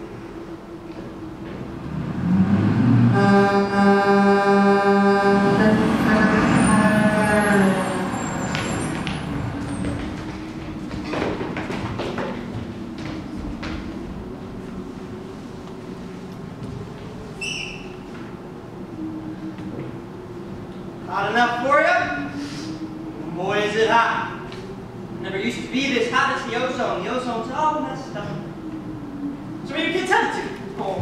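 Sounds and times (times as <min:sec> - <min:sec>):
truck engine rumble: 0:00.0 - 0:21.1
truck horn: 0:03.0 - 0:08.8.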